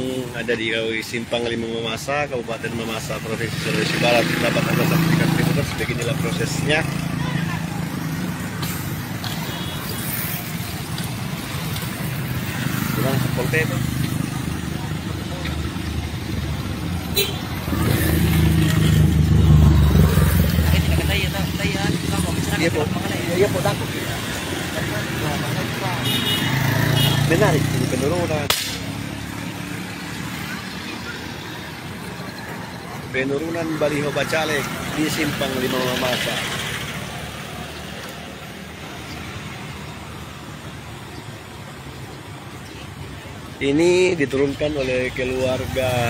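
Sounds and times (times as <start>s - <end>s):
motorbikes passing: 0.0s - 46.0s.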